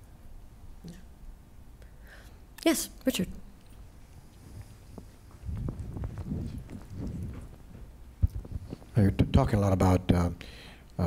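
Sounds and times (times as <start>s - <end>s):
microphone handling thumps: 4.5s - 9.4s.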